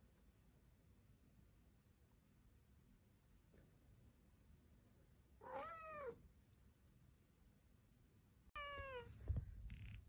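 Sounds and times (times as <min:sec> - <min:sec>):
cat meowing: 0:05.4 - 0:06.2, 0:08.6 - 0:10.0.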